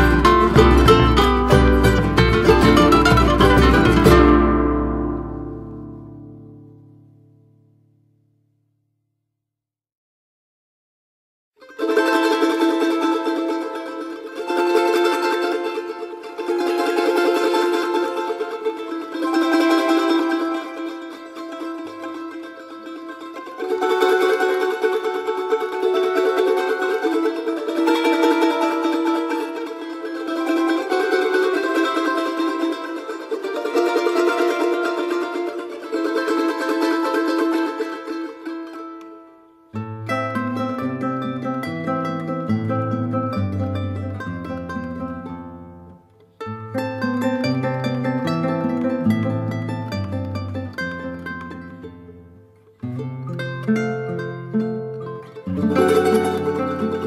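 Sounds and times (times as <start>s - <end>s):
solo charango playing: 0.0s - 8.1s, 11.6s - 57.0s.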